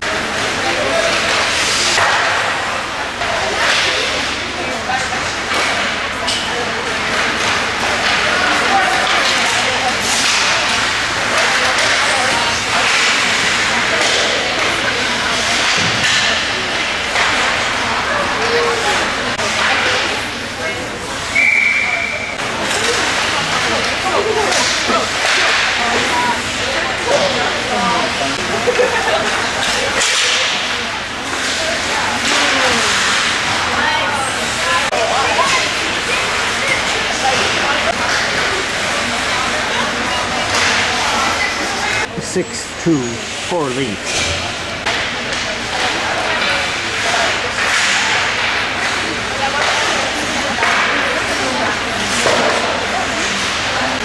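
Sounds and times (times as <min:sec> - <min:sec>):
sticks and puck clattering: 0:00.0 - 0:04.4, 0:05.0 - 0:20.2, 0:22.4 - 0:27.5, 0:29.2 - 0:34.0, 0:34.8 - 0:42.0, 0:44.1 - 0:54.0
voices in an arena: 0:00.0 - 0:54.0
whistle blast: 0:21.3 - 0:22.3.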